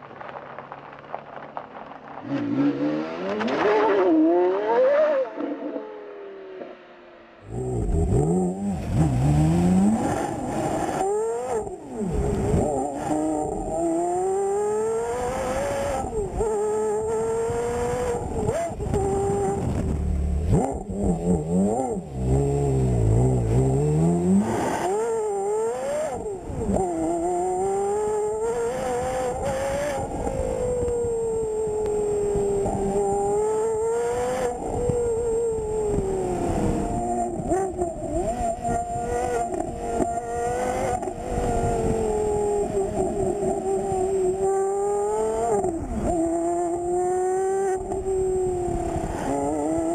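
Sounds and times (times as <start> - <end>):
sports car engine revving: 7.5 - 11.7.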